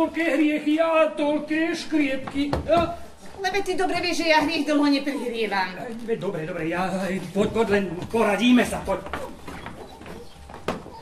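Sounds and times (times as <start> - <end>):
footsteps on a stage floor: 7.3 - 11.0.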